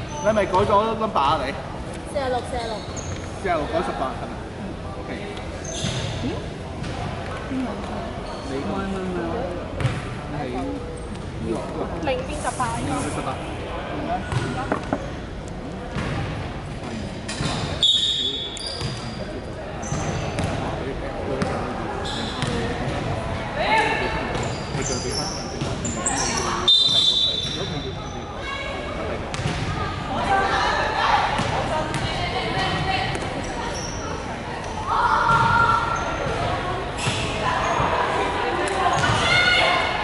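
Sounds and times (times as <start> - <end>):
sneakers squeaking: 0.0 - 1.0, 2.1 - 3.6, 5.4 - 9.0, 9.7 - 10.2, 14.2 - 15.2, 15.9 - 20.8, 21.4 - 40.0
basketball bouncing on wooden court: 9.8 - 10.0, 29.3 - 29.7, 35.3 - 35.5, 39.0 - 39.2.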